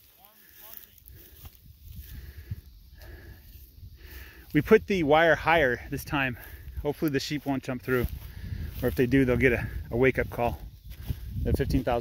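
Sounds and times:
wind rumble on microphone: 0:01.1 - 0:06.8, 0:07.7 - 0:12.0.

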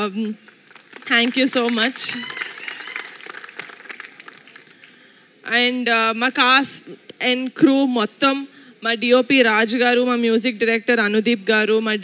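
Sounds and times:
people clapping: 0:00.4 - 0:05.1.

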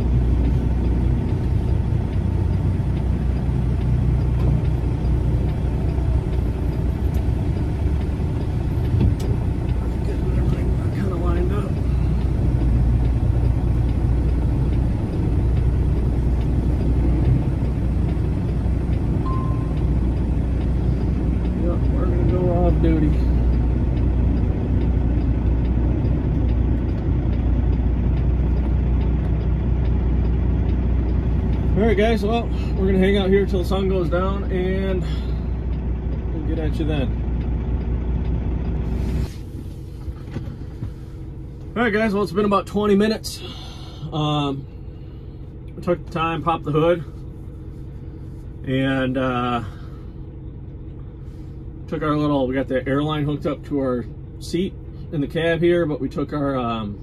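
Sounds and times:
diesel engine rumbling: 0:00.0 - 0:57.0.

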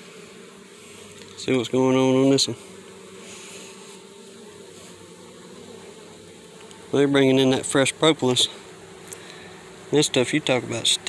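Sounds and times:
honeybees humming: 0:00.0 - 0:11.0.

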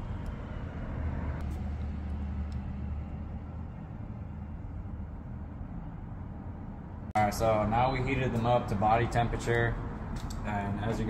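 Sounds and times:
low rumble hum: 0:00.0 - 0:11.0.

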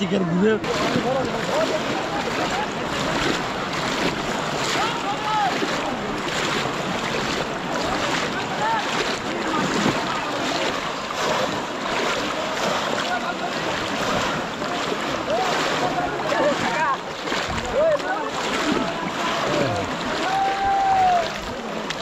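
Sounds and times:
water sloshing and splashing: 0:00.0 - 0:22.0
crowd shouting: 0:00.7 - 0:06.4, 0:07.2 - 0:21.7.

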